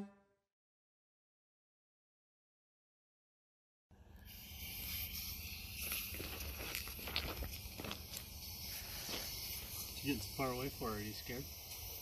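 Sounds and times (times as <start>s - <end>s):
steady hiss: 4.0s - 12.0s.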